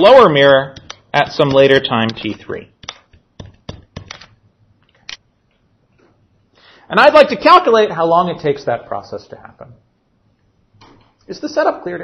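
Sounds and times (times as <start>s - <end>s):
stylus tapping on screen: 0.7s - 5.1s.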